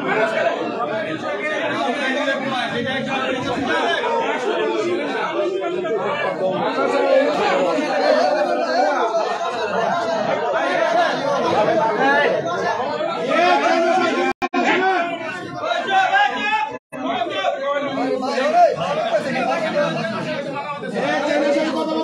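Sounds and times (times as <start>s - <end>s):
people talking over one another: 0.0s - 22.0s.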